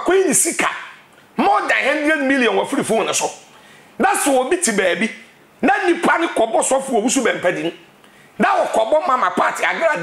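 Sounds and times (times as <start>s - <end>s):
man talking animatedly: 0.0s - 10.0s.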